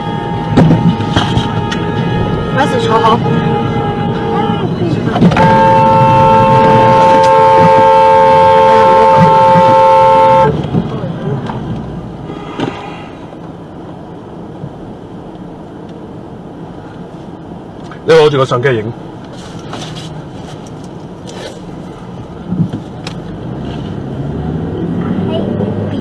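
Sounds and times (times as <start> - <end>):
car horn blast: 0.0 - 10.6, 12.2 - 13.3
road noise: 0.0 - 26.0.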